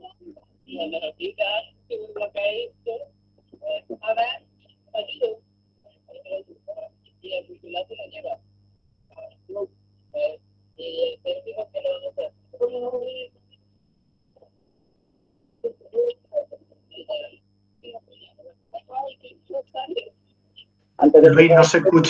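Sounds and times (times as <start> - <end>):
steady low hum: 0.0 - 22.0
muffled speech through video call: 0.7 - 3.0, 21.0 - 22.0.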